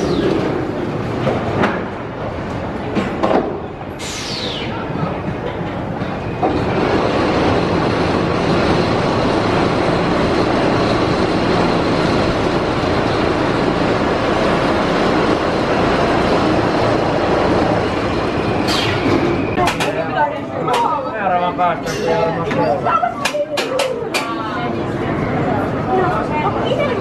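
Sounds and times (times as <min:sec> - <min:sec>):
roller coaster wheels rushing on track: 0:00.0 - 0:03.9, 0:04.5 - 0:27.0.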